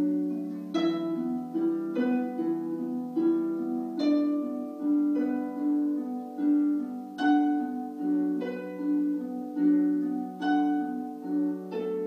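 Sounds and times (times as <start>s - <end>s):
harp playing plucked notes: 0.0s - 12.0s.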